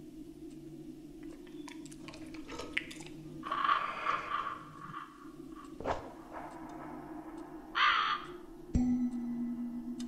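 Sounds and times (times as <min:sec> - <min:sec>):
low steady hum: 0:00.0 - 0:10.0
crow cawing: 0:03.4 - 0:05.8, 0:07.6 - 0:08.6.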